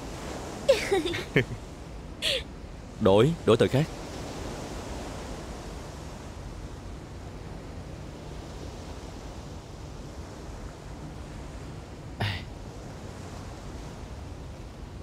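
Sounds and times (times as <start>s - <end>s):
outdoor ambience hiss: 0.0s - 15.0s.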